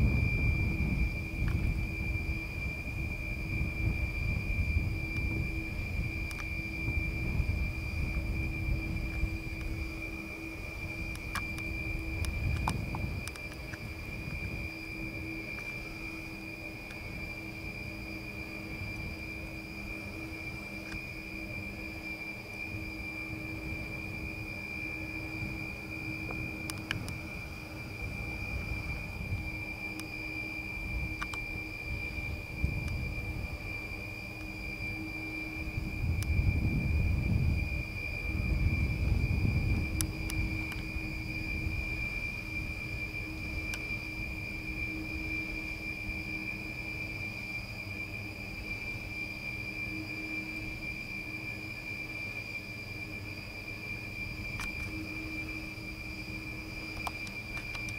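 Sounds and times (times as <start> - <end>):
wind rumble on microphone: 0.0 - 47.7
wind turbine whine: 0.0 - 57.9.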